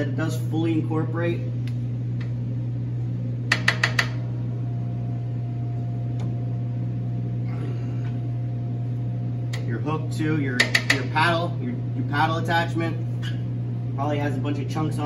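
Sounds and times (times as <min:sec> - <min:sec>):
steady low hum: 0:00.0 - 0:15.0.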